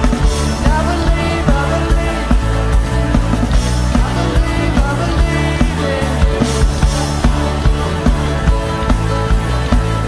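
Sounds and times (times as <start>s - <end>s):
band playing: 0.0s - 10.0s
drum kit beat: 0.0s - 10.0s.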